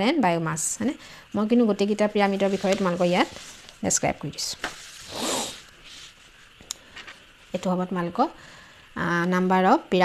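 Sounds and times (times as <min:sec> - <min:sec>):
paper sheets rustling: 0:02.2 - 0:07.3.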